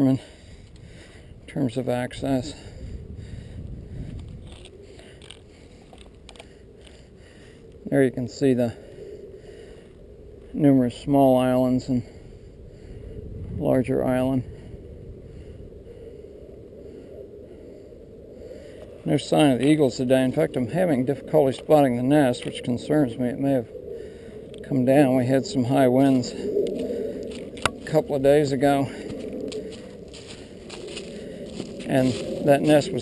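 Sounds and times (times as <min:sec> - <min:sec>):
low outdoor rumble: 0:00.0 - 0:33.0
footsteps on dry leaves: 0:26.7 - 0:33.0.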